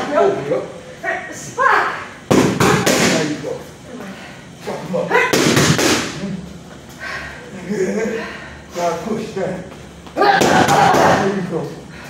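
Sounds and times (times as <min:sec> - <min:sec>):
gloves punching focus mitts: 0:05.3 - 0:06.1.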